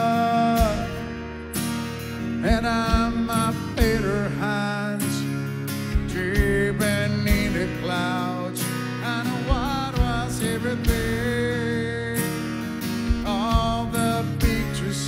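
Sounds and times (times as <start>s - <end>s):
man singing: 0.0s - 1.4s, 2.2s - 15.0s
acoustic guitar strumming: 0.0s - 15.0s
kick drum beat: 13.1s - 14.7s.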